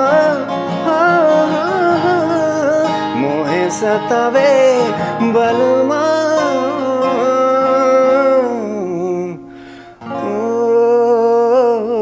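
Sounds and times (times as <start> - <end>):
acoustic guitar: 0.0 - 12.0
man singing long notes: 0.0 - 12.0
singer breathing in: 9.5 - 10.0.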